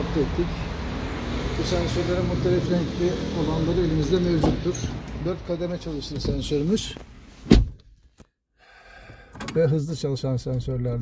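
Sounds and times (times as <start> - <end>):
car door shutting: 7.4 - 7.9.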